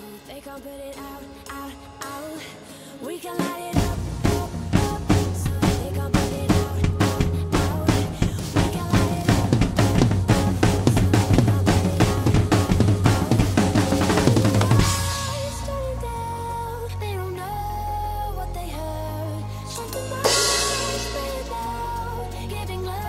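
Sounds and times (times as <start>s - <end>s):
electronic backing track: 0.0s - 23.0s
drum kit playing groove: 3.2s - 15.8s, 19.8s - 23.0s
cymbal crash: 20.2s - 22.0s.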